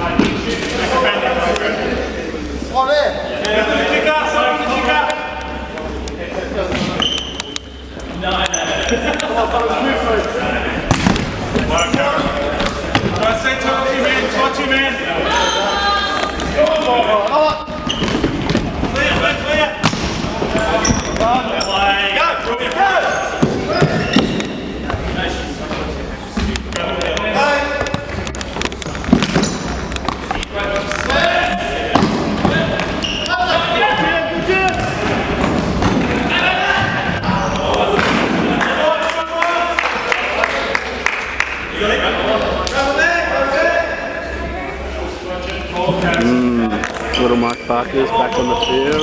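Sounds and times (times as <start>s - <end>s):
voices talking and calling: 0.0s - 35.4s, 41.8s - 49.0s.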